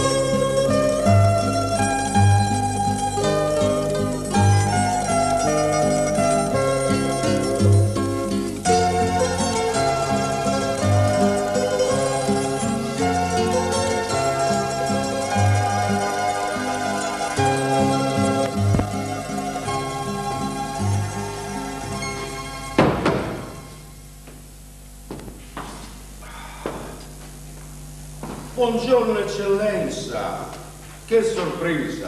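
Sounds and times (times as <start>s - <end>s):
instrumental music with bass line: 0.0s - 24.0s
steady low hum: 18.2s - 32.0s
knocks on wooden stage: 22.8s - 23.7s
man's voice: 28.6s - 32.0s.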